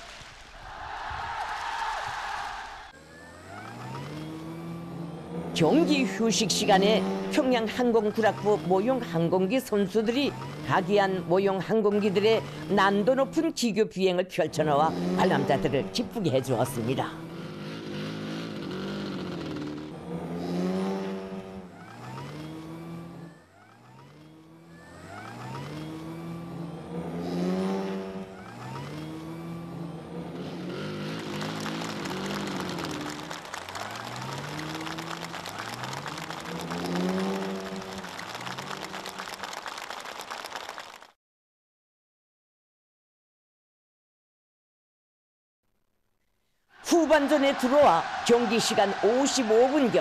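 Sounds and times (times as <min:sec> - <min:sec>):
model aircraft engines revving: 0:17.2 - 0:39.7.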